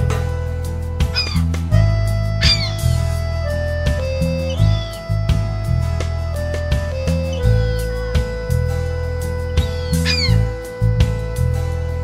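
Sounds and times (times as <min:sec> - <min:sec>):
music of held low notes: 0:00.0 - 0:12.0
gull call: 0:01.0 - 0:05.5, 0:06.3 - 0:11.4.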